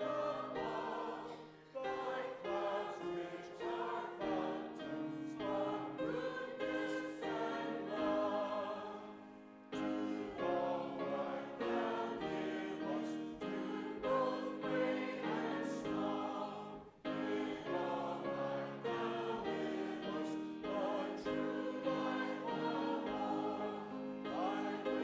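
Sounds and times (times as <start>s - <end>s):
congregation and choir singing a hymn: 0.0s - 25.0s.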